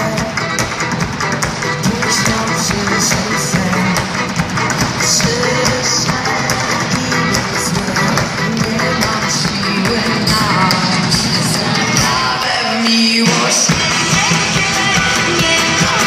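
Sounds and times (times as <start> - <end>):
acoustic guitars: 0.0 - 16.0
percussion: 0.0 - 16.0.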